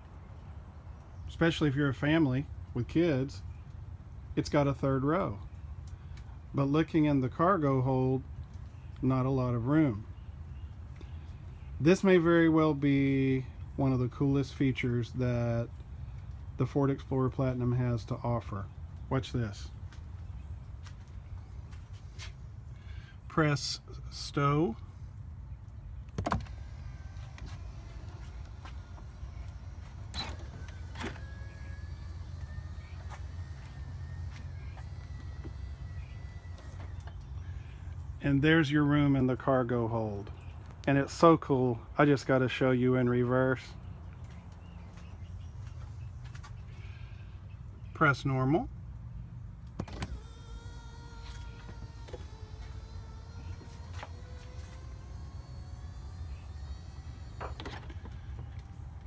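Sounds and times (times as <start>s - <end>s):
faint electric motor whine: 0.0s - 59.0s
steady low hum: 0.0s - 59.0s
seat clicks: 26.1s - 29.0s.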